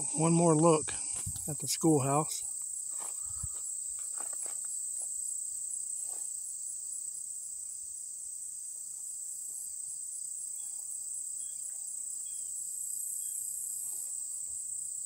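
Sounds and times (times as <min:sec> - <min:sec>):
insect chorus trilling: 0:00.0 - 0:15.0.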